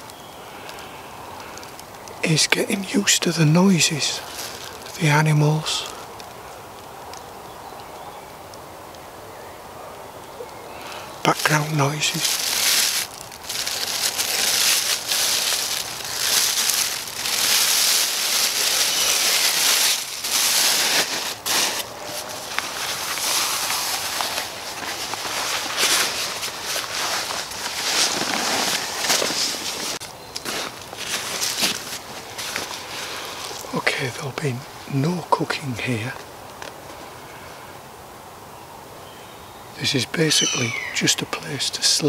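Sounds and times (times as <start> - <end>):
plastic bag crinkling: 4.2 - 5.2, 10.9 - 33.7.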